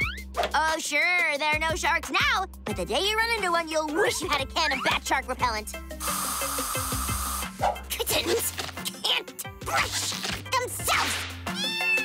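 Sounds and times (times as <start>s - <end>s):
background music: 0.0s - 12.0s
aerosol spray hissing: 6.0s - 7.6s.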